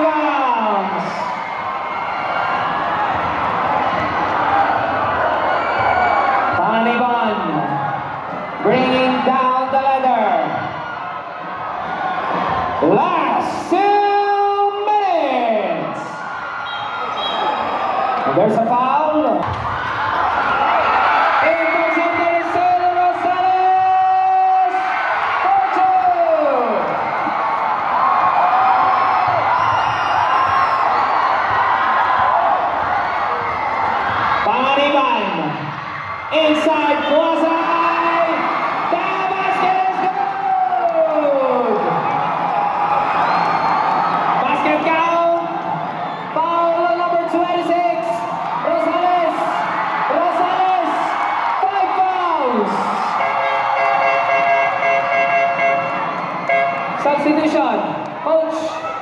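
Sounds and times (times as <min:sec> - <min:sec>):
crowd cheering and shouting: 0:00.0 - 0:59.0.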